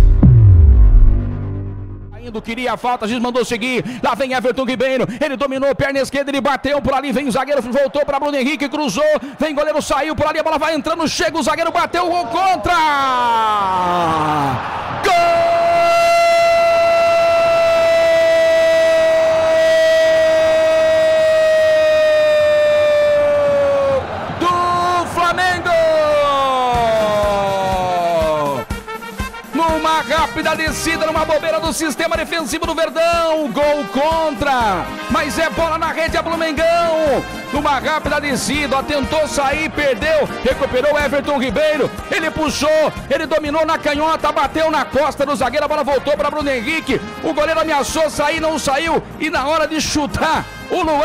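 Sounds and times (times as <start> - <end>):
low humming drone: 0.0 - 2.2
quick falling sweep: 0.0 - 2.2
deep bass boom: 0.0 - 2.7
radio announcer shouting goal: 15.0 - 28.6, 29.6 - 51.0.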